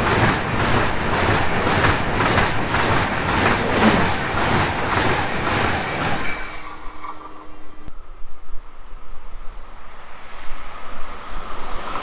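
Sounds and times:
wheels clattering over rails: 0.0 - 7.6
high-speed train passing: 0.0 - 12.0.

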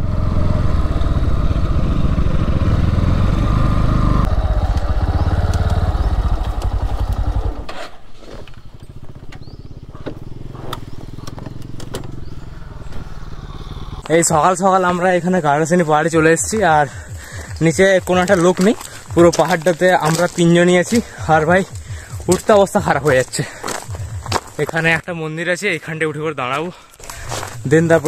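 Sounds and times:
motorcycle engine running: 0.0 - 24.8
footsteps crunching dry leaves: 14.9 - 25.0, 26.5 - 28.0.

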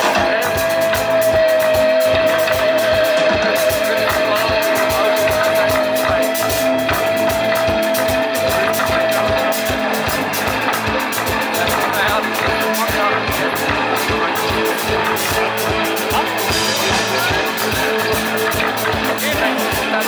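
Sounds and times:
rock band jamming: 0.0 - 20.0.

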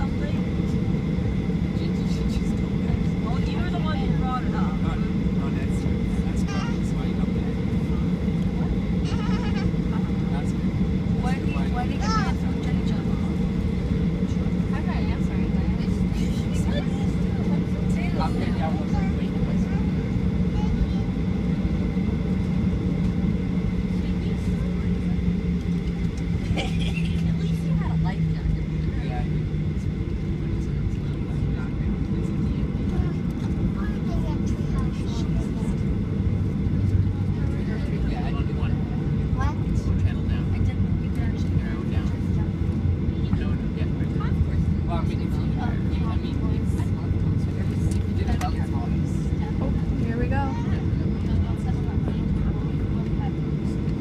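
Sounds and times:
jet engines rumbling: 0.0 - 54.0.

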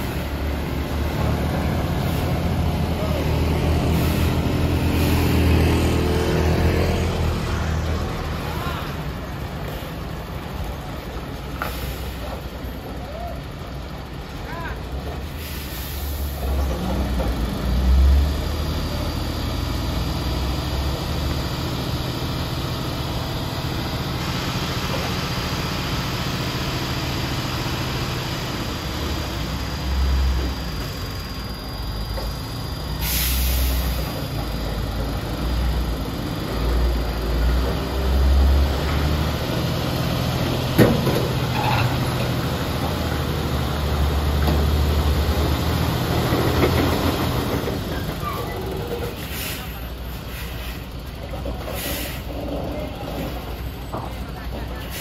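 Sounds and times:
diesel truck engine labouring: 0.0 - 55.0
air hiss: 32.9 - 34.2.

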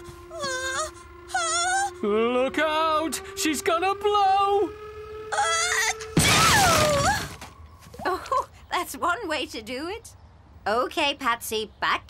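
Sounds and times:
wavering cartoon tone: 0.0 - 8.4
wooden shed crashing apart: 6.2 - 7.6.

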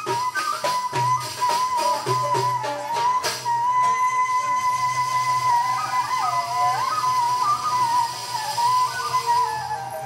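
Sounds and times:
sliding solo melody: 0.0 - 10.0
soft ensemble accompaniment: 0.0 - 10.0.

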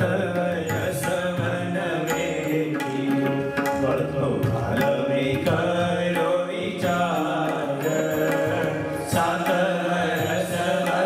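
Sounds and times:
tabla: 0.0 - 11.0
violin: 0.0 - 11.0
men chanting in unison: 4.8 - 11.0.

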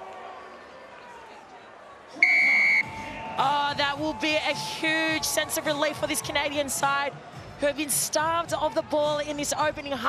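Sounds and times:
low crowd ambience: 0.0 - 10.0
stadium buzzer: 2.2 - 3.1.

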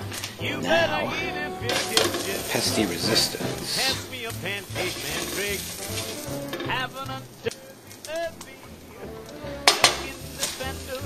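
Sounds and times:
food sizzling on griddle: 1.6 - 11.0
spatula clicking on griddle: 3.8 - 8.6, 9.6 - 11.0.

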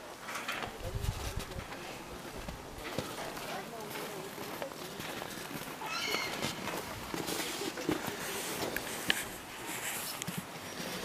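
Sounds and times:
faint rustling: 0.2 - 11.0
high-pitched animal call: 5.8 - 6.5.

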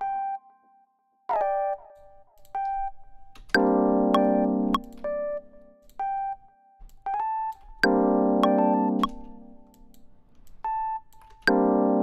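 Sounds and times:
electric piano playing jazz: 1.3 - 12.0.

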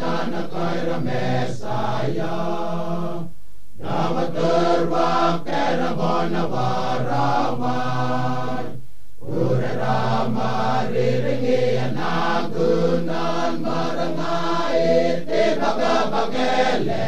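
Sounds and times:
male choir chanting in unison: 0.0 - 17.0.

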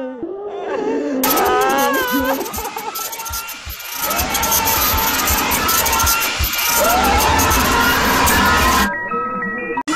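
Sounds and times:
harsh distorted noise: 1.2 - 8.9
music: 4.0 - 9.9.

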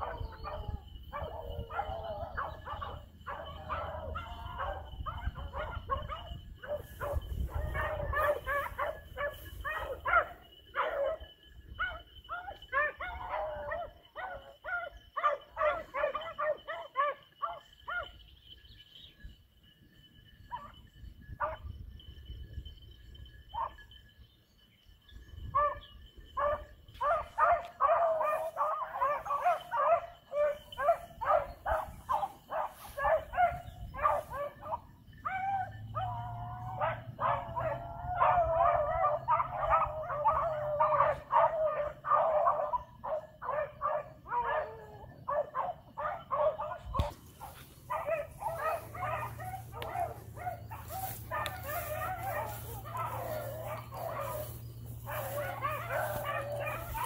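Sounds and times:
beagles baying and barking: 0.0 - 57.0.

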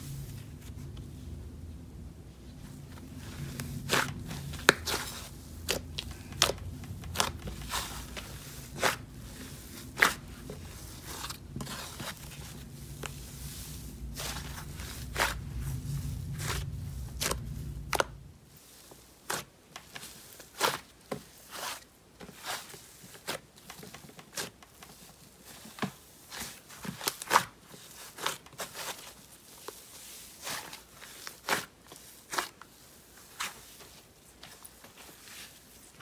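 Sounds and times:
low steady hum: 0.0 - 19.2
slime squishing and crackling: 3.0 - 21.8, 26.3 - 35.5.

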